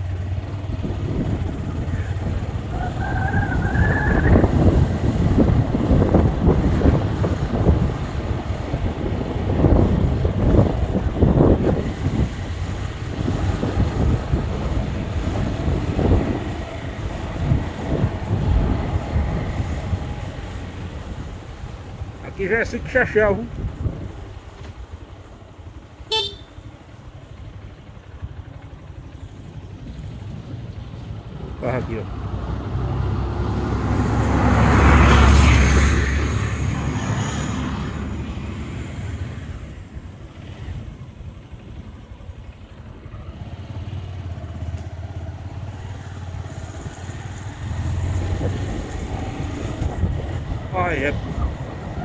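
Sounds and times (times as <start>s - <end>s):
motorcycle engine running: 0.0s - 3.0s, 23.6s - 31.8s
truck engine rumble: 0.0s - 52.0s
wind rushing past: 0.6s - 22.4s, 46.4s - 52.0s
horn toot: 26.1s - 26.6s.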